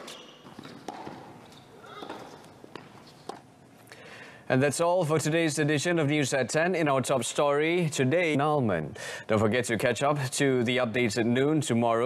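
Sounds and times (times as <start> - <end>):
racket striking tennis ball: 0.0 - 3.4
tennis ball bouncing: 0.4 - 3.4.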